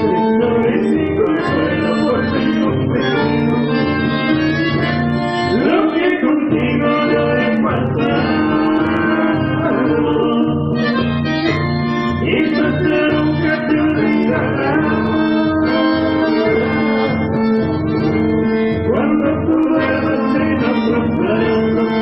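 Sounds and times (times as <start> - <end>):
accordion and bandoneon chords: 0.0 - 22.0
strummed acoustic guitar: 0.0 - 22.0
steady bass beat: 6.5 - 22.0.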